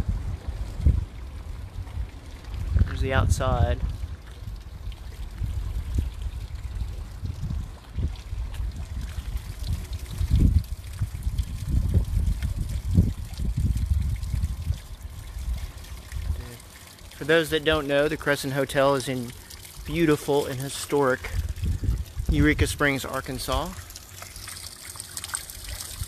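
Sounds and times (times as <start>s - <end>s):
low rumble on microphone: 0.0s - 16.6s, 21.2s - 23.8s
fountain water splashing: 0.0s - 26.0s.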